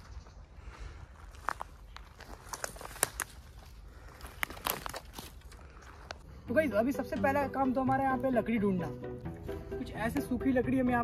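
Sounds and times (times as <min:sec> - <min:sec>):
footsteps on dry leaves: 0:00.0 - 0:06.3
sharp twig crackles: 0:01.3 - 0:06.2.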